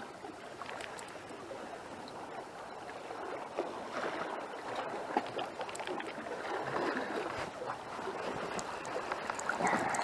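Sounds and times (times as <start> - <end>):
seawater lapping at shore: 0.0 - 10.0.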